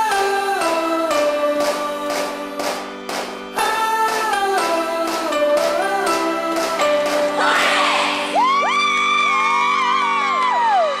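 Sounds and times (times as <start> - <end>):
background music with held chords: 0.0 - 11.0
crowd cheering: 7.4 - 11.0.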